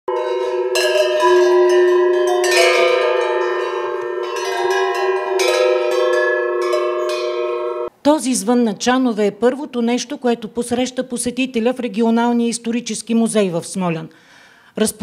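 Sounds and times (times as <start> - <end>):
livestock bells ringing: 0.1 - 7.9.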